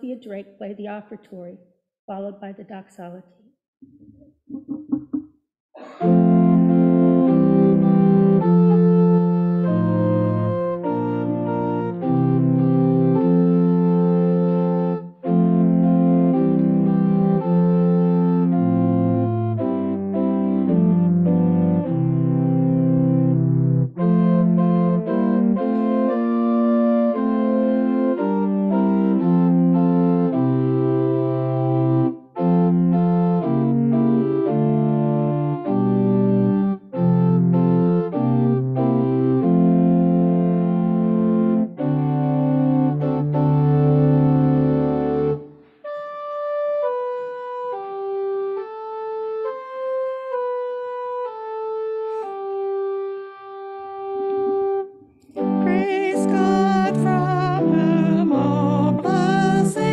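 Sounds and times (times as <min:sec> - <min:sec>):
organ bass line: 0:04.0 - 0:05.2, 0:05.9 - 0:59.9
church organ playing chords: 0:05.8 - 0:59.9.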